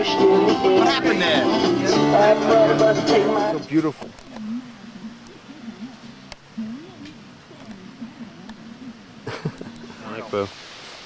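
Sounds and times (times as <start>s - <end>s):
low wavering moaning voice: 4.3s - 9.3s.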